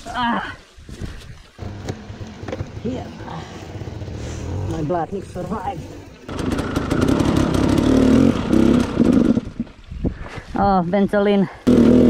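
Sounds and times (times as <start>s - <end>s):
low rumble: 1.6s - 10.3s
person speaking: 4.4s - 6.0s.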